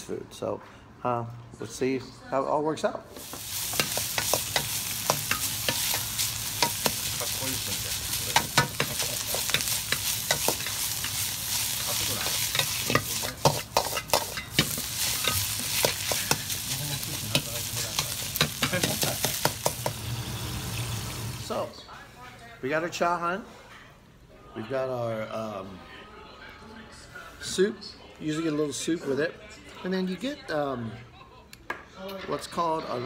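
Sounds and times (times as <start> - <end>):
rice sizzling in a wok: 3.1 - 21.7
spatula clacking and scraping wok: 3.2 - 21.1.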